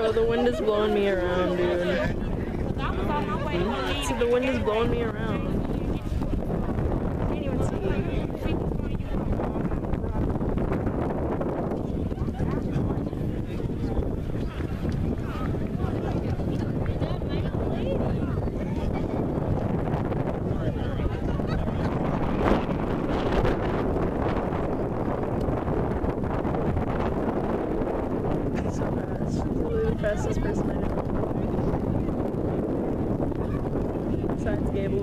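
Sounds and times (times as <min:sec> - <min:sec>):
faint background voices: 0:00.0 - 0:26.1, 0:26.8 - 0:35.0
wind buffeting microphone: 0:00.0 - 0:35.0.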